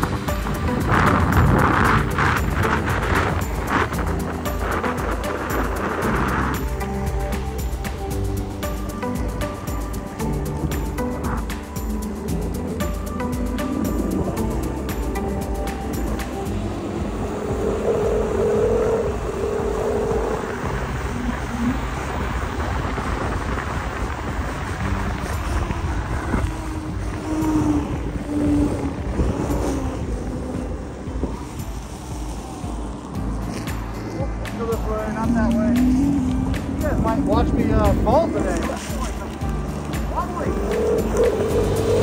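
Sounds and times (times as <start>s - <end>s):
background music: 0.0s - 42.0s
road noise: 0.0s - 42.0s
wind buffeting microphone: 0.0s - 42.0s.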